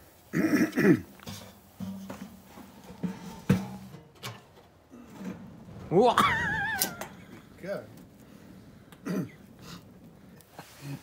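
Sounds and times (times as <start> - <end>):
person clearing throat: 9.0 - 9.4.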